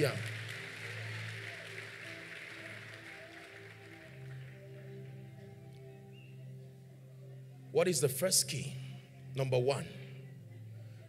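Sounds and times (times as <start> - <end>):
faint hall and crowd noise: 0.0 - 7.9.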